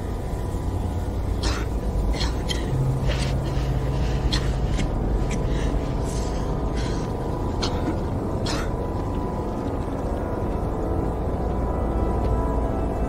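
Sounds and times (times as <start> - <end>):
ominous low drone score: 0.0 - 13.0.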